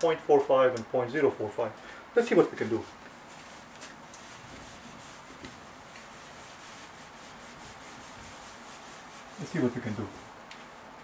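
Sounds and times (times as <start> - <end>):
eraser scrubbing whiteboard: 2.5 - 10.9.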